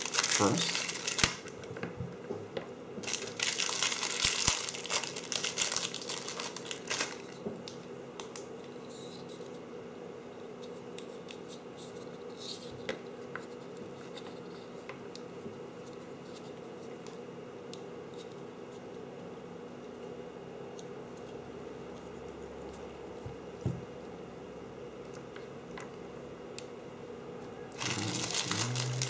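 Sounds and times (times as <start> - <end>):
plastic packaging crinkling: 0.0 - 1.6, 3.0 - 7.4, 27.7 - 29.0.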